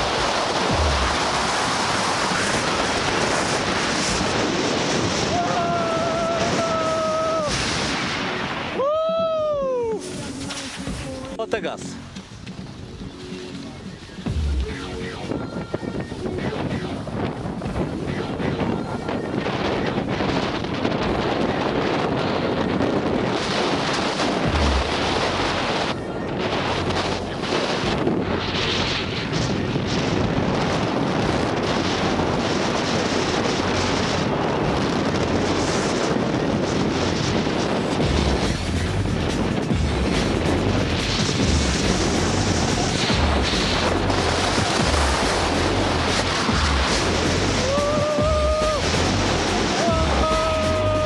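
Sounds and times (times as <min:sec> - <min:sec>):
snowboard scraping over snow: 0:00.0 - 0:51.0
wind on microphone: 0:00.0 - 0:51.0
low thumps: 0:10.2 - 0:18.9.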